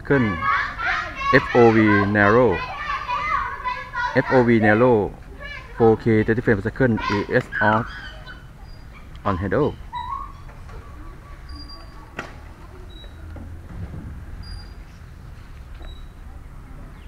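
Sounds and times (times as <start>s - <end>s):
low steady rumble: 10.2s - 17.0s.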